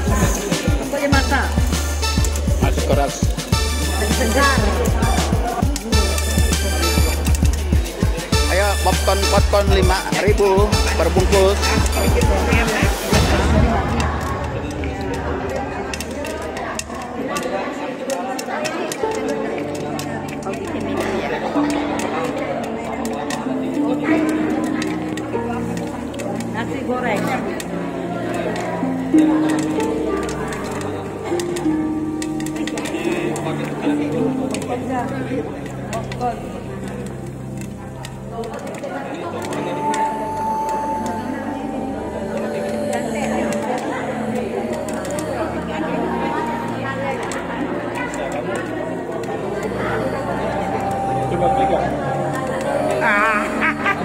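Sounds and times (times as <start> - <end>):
popcorn kernels popping in a pan: 0.0 - 34.8
background music: 0.0 - 54.0
people talking: 0.0 - 54.0
voices: 0.0 - 54.0.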